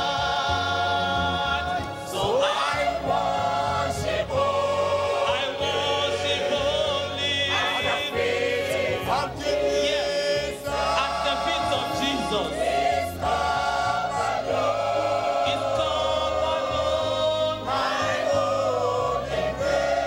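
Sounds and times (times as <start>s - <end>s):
choir singing a hymn: 0.0s - 20.0s
men singing with vibrato: 0.0s - 20.0s.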